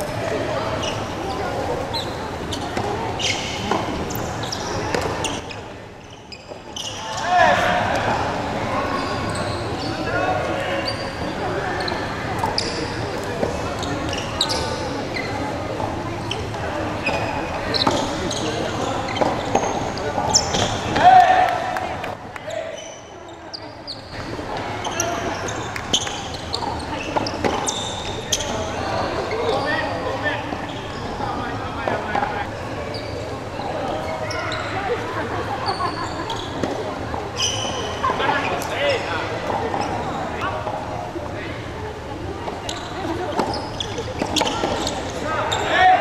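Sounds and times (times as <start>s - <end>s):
voices in sports hall: 0.0s - 46.0s.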